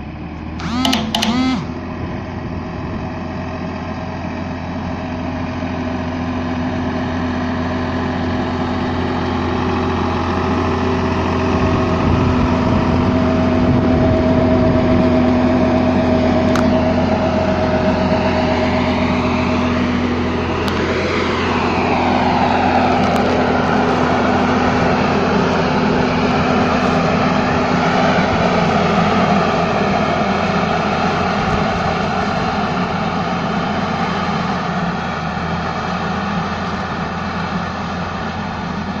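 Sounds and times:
tractor engine running under load: 0.0s - 39.0s
sprayer fan rushing air: 0.6s - 1.8s, 16.4s - 34.7s.

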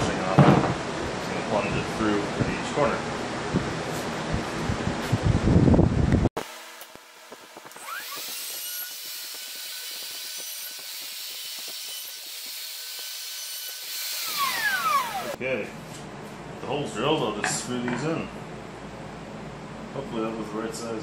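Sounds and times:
router motor whining: 7.7s - 15.4s.

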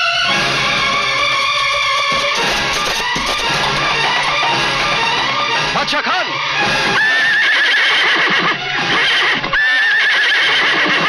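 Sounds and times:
horse whinnying: 6.8s - 11.0s.

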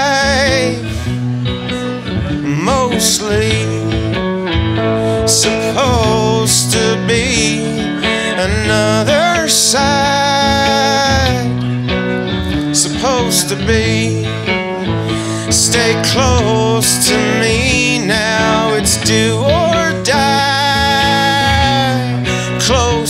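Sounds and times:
man singing: 0.0s - 23.0s
strummed electric guitar: 0.0s - 23.0s.

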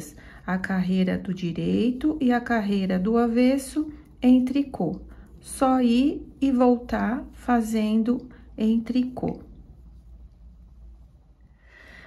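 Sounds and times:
steady low hum: 0.0s - 12.0s
soft intake of breath: 11.4s - 12.0s.

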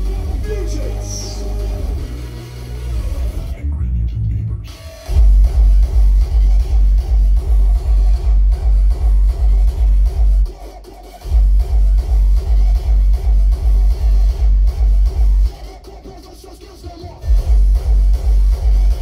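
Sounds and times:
distorted kick drum: 0.0s - 2.3s, 5.0s - 10.6s, 11.2s - 15.5s, 17.2s - 19.0s
hardstyle dance music: 0.0s - 3.6s, 4.6s - 19.0s.

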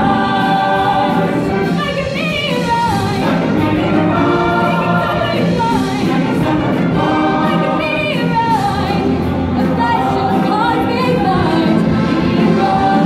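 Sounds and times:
choir singing with live band: 0.0s - 13.0s.

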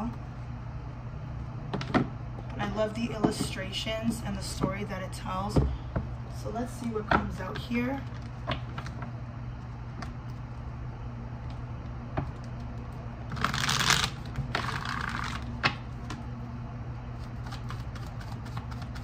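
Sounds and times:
cards being shuffled: 12.3s - 16.2s, 17.2s - 19.0s.

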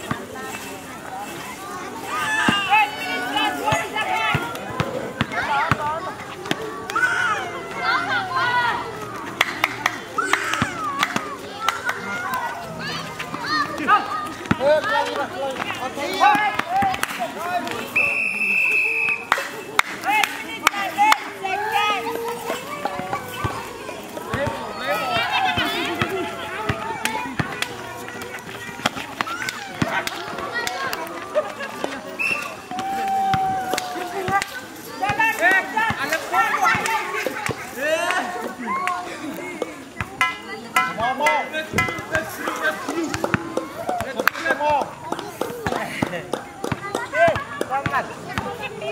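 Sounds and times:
players calling and shouting: 0.0s - 48.9s
people shouting: 2.1s - 5.9s, 32.2s - 37.2s
basketball bouncing on concrete: 3.7s - 6.7s, 13.2s - 17.0s, 24.2s - 30.8s, 41.7s - 42.3s, 43.0s - 48.7s
whistle: 17.9s - 19.3s, 32.2s - 32.6s.

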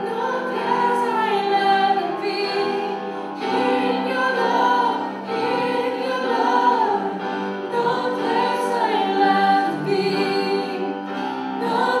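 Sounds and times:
keyboard: 0.0s - 12.0s
women singing: 0.0s - 12.0s.

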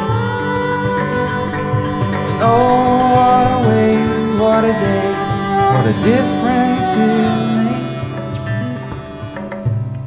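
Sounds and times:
held melody line: 0.0s - 9.7s
strummed acoustic guitar: 0.0s - 10.0s.

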